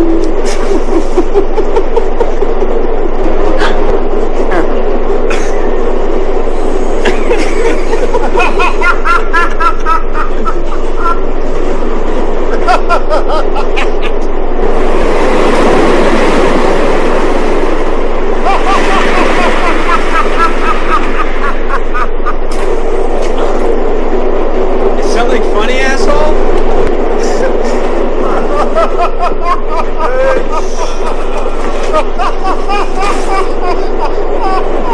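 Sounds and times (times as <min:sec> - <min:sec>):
men talking and laughing: 0:00.0 - 0:05.8, 0:06.6 - 0:11.4, 0:12.4 - 0:14.4, 0:18.4 - 0:23.8, 0:27.1 - 0:34.9
subway train rumbling: 0:00.0 - 0:34.9.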